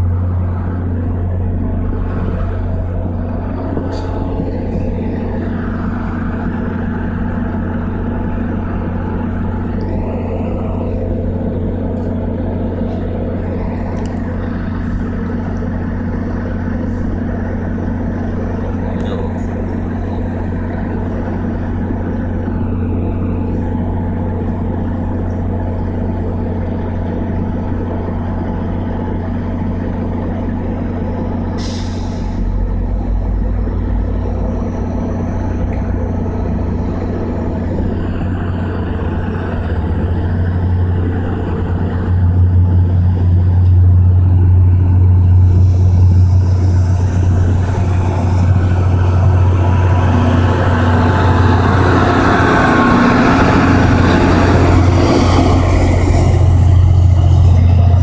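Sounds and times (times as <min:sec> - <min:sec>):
diesel train idling: 0:00.0 - 0:58.0.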